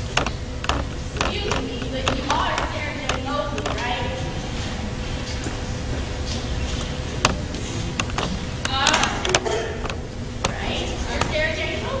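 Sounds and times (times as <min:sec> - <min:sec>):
sharp clicks and knocks: 0:00.0 - 0:03.9, 0:07.2 - 0:11.4
steady low rumble: 0:00.0 - 0:12.0.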